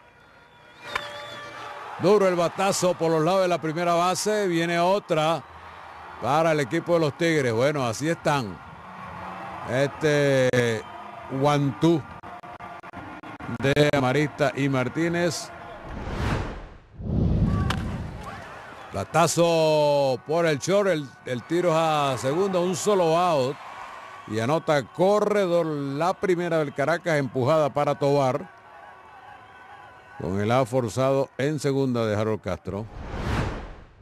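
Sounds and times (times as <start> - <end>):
faint stadium crowd: 0.0 - 16.5, 17.3 - 33.2
falling whoosh: 15.8 - 18.3, 32.9 - 34.0
deep low impact with rumble: 16.2 - 18.2
bat cracking a ball: 17.6 - 18.3.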